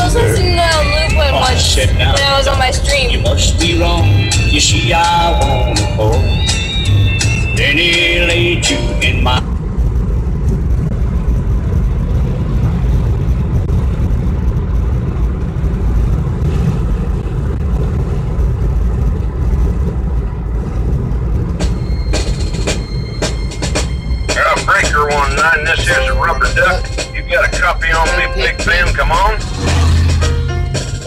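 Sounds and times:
brief voice: 0.0s - 0.7s
radio-style talk: 0.0s - 6.4s, 7.6s - 9.5s, 24.3s - 29.7s
music: 0.0s - 9.4s, 21.6s - 31.0s
car road and engine rumble: 0.0s - 31.0s.

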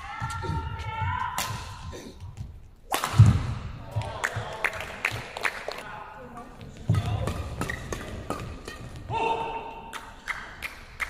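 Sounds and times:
racket striking shuttlecock: 6.9s - 10.6s.

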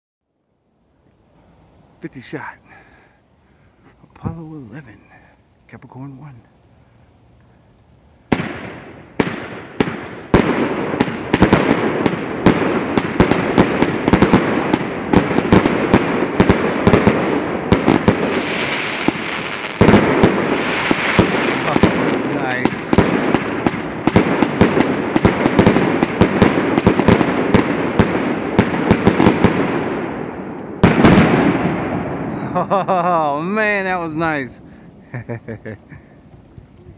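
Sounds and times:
fireworks firing and bursting: 8.3s - 32.4s.

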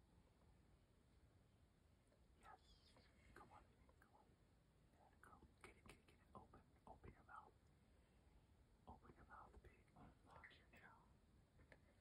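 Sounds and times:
person whispering faintly: 2.4s - 4.3s, 5.0s - 7.6s, 8.9s - 12.0s.

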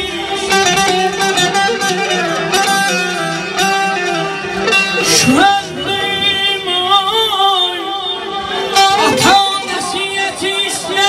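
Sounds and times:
man singing with wavering notes: 0.0s - 11.0s.

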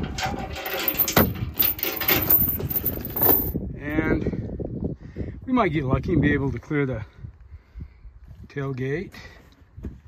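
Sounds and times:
metal chain clinking: 0.2s - 3.6s.

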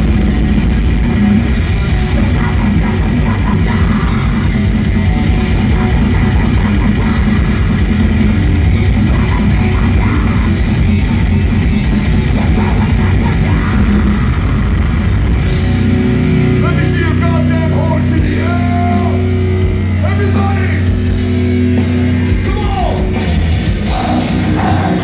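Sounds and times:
distorted guitar riffing: 0.0s - 25.0s
fast dense drumming: 0.0s - 25.0s
ringing low chords: 0.0s - 25.0s.

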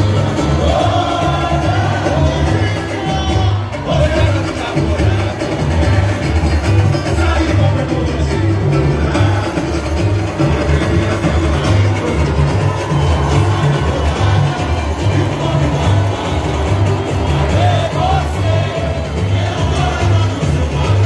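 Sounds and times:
bass drums beating: 0.0s - 21.0s
crowd noise: 0.0s - 21.0s
samba percussion band: 0.0s - 21.0s.

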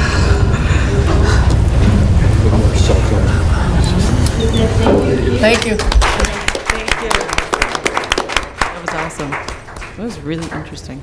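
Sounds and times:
small group applauding: 5.4s - 11.0s.

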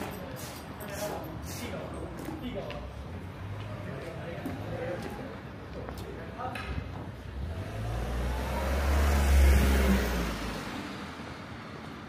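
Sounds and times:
vehicle driving past: 7.2s - 12.0s.

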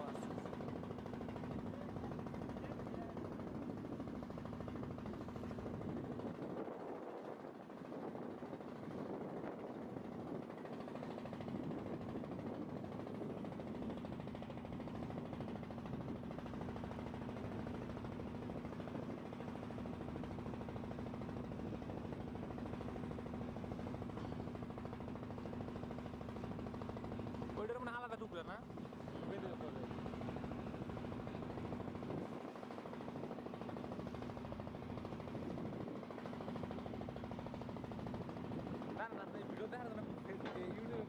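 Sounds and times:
boat engine droning: 0.0s - 41.0s.

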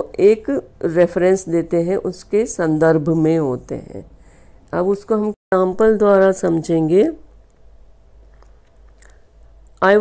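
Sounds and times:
woman speaking: 0.0s - 7.3s, 9.8s - 10.0s
faint room noise: 0.0s - 10.0s.

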